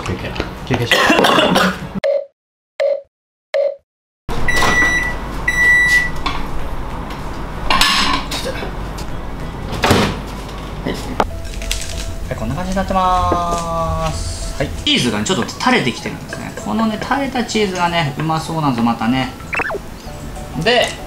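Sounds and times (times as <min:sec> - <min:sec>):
microwave beeps: 0:04.4 - 0:06.2, 0:19.5 - 0:19.8.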